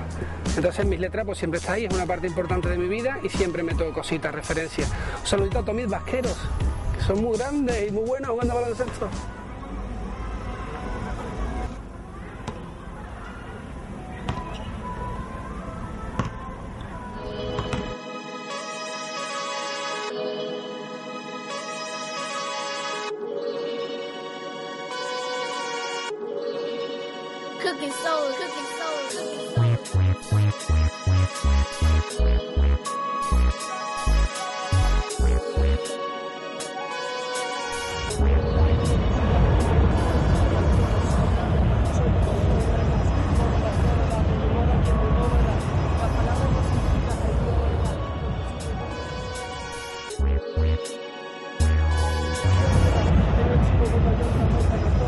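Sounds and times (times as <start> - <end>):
music: 0.0 - 55.0
basketball bouncing on court: 12.4 - 12.6, 14.3 - 14.6, 16.2 - 16.4, 17.5 - 17.9
people talking: 27.6 - 29.8, 38.6 - 49.0, 52.0 - 55.0
loud bass-heavy live concert music: 51.6 - 55.0.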